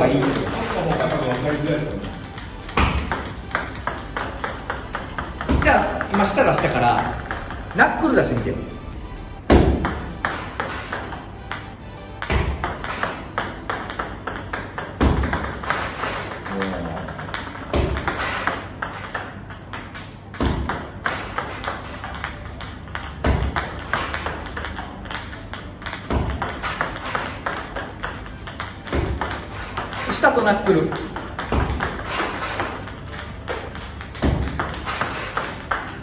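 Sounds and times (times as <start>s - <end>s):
ball bouncing on table: 0.0s - 8.1s, 9.5s - 36.0s
table tennis ball on racket: 0.0s - 8.8s, 9.5s - 36.0s.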